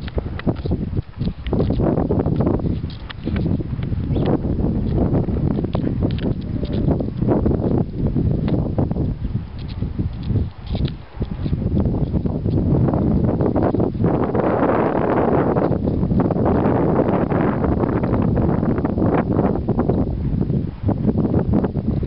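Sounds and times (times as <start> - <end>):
wind blowing on microphone: 0.0 - 22.0.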